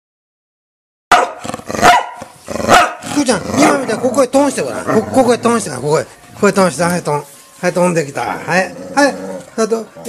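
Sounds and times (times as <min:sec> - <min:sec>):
dog barking: 0:01.1 - 0:03.9.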